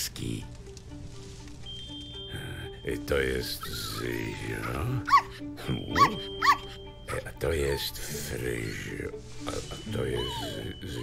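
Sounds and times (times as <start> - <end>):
soft background music: 0.0 - 11.0
puppies yipping: 3.6 - 6.8, 10.0 - 11.0.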